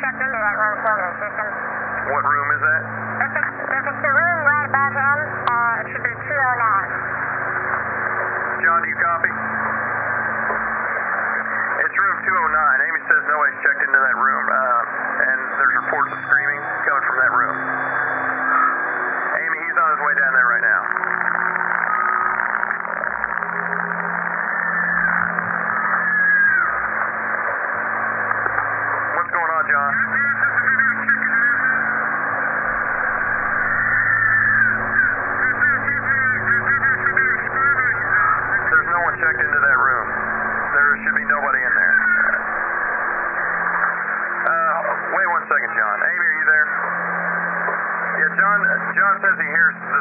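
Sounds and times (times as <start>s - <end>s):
garbled radio voices: 0.0s - 50.0s
low hum: 0.0s - 50.0s
two-way radio hiss: 0.1s - 50.0s.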